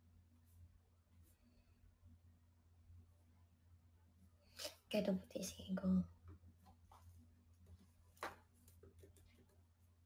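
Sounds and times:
faint low hum: 0.0 - 10.0
woman speaking softly: 4.6 - 6.2.

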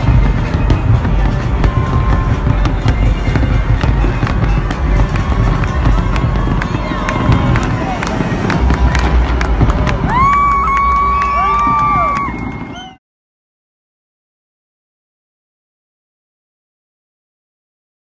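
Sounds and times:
deep continuous rumble: 0.0 - 12.9
fireworks bangs and crackles: 0.0 - 12.9.

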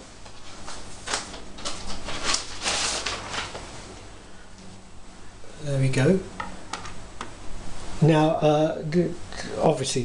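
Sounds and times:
vinyl record rustling scrapes: 0.4 - 3.6.

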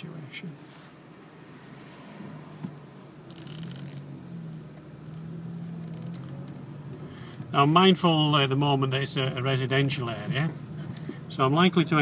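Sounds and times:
car engine: 0.0 - 12.0
road noise: 0.0 - 12.0.

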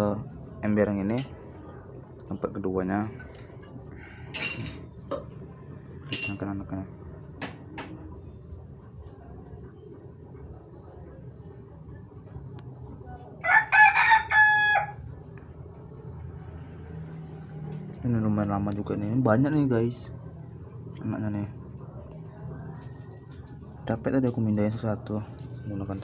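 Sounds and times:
rooster crowing: 13.4 - 15.2.

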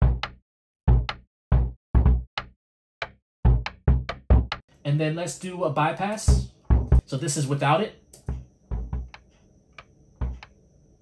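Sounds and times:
trap percussion ticks and clicks: 6.1 - 7.0, 8.1 - 10.6
deep percussion hit: 6.3 - 7.0.

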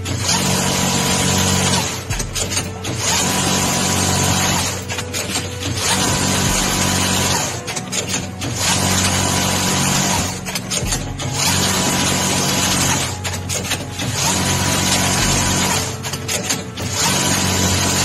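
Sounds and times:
tooling clicks and clatter: 0.0 - 18.0.

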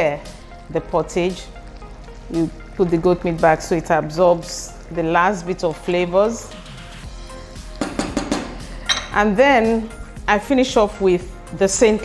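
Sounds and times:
soft background music: 0.0 - 12.0
spoon knocking against metal pot: 7.8 - 9.2.

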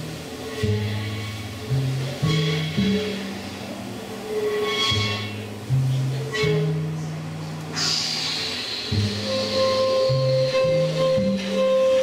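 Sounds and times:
steady low note: 0.0 - 7.8, 8.8 - 12.0.

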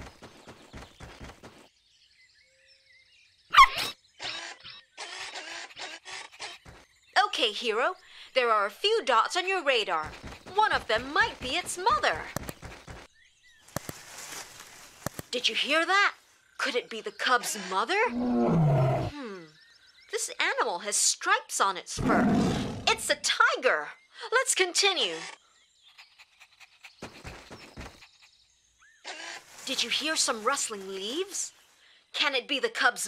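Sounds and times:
faint bird chirps: 0.0 - 20.9, 22.3 - 32.3
sharp clicks: 12.3 - 12.9
leaves rustling in a bush: 13.6 - 16.4, 29.1 - 31.8.

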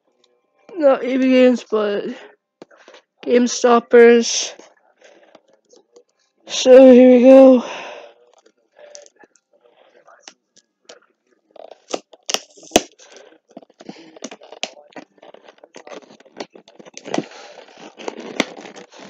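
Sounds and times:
packaging crackling and rustling: 11.6 - 19.0.

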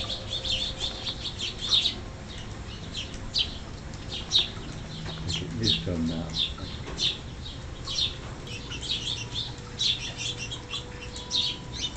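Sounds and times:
small birds chirping: 0.0 - 11.9.

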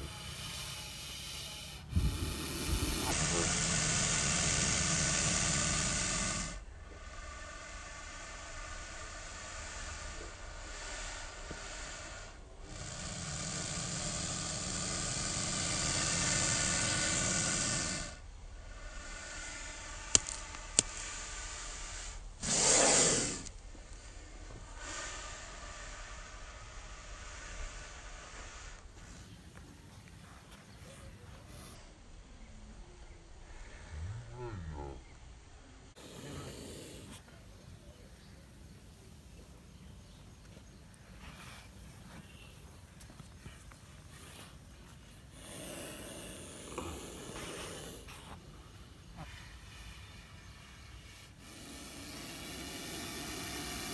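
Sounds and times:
snake hissing: 0.0 - 31.9, 35.9 - 42.8, 43.4 - 53.9.

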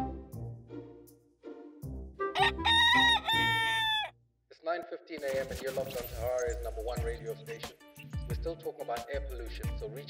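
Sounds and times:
background music: 0.0 - 4.1, 5.2 - 10.0
rooster crowing: 2.3 - 4.1.

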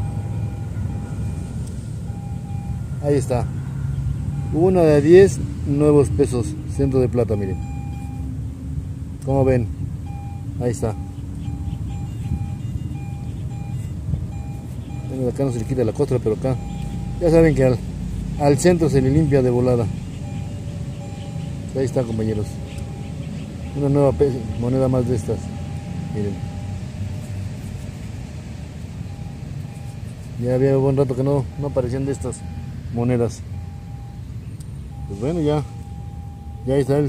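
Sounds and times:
metal detector beeps: 0.0 - 1.4, 2.1 - 2.8, 4.3 - 4.8, 6.7 - 8.3, 10.0 - 17.6, 20.2 - 26.8, 29.1 - 30.1, 31.5 - 34.3, 34.9 - 37.0
distant road traffic rumble: 0.0 - 37.0.

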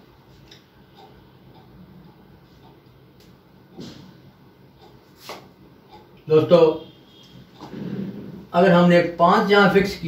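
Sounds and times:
faint regular ticking: 0.0 - 7.7.

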